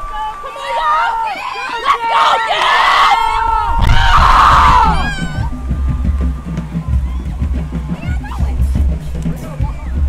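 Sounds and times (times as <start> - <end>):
marching band music: 4.1 - 10.0.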